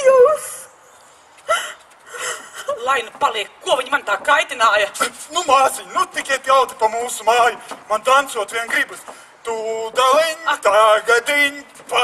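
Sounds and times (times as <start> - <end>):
person gasping: 1.5 - 2.8
person speaking: 2.6 - 10.6.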